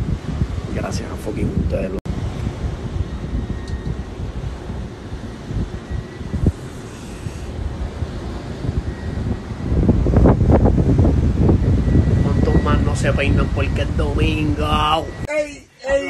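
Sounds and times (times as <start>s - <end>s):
wind buffeting microphone: 0.0s - 15.3s.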